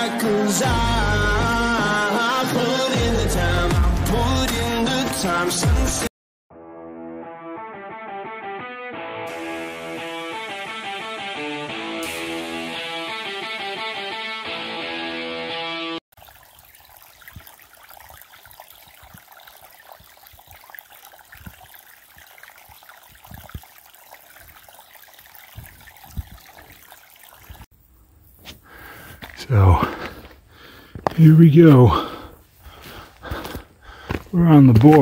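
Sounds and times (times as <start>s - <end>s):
guitar music: 6.6s - 16.0s
creek trickling: 16.1s - 35.0s.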